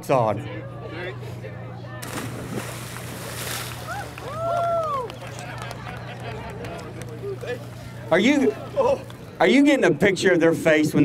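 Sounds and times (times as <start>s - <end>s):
person jumping into water: 2.0s - 4.6s
people splashing and wading: 2.0s - 9.3s.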